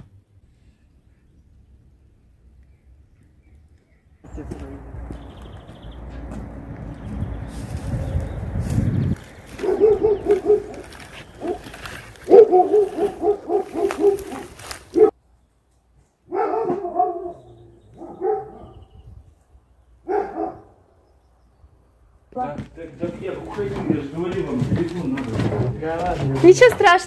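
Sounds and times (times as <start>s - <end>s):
dog barking: 9.5s - 15.2s, 16.3s - 18.9s, 20.0s - 20.8s.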